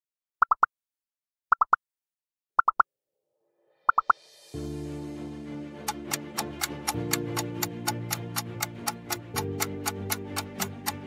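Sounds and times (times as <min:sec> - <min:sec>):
background music with low tones: 0:04.2 - 0:11.0.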